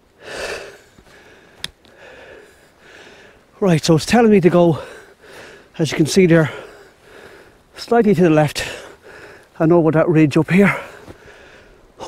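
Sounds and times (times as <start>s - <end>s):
man breathing heavily: 0.1s - 3.6s, 4.7s - 7.8s, 8.6s - 9.6s, 10.6s - 12.0s.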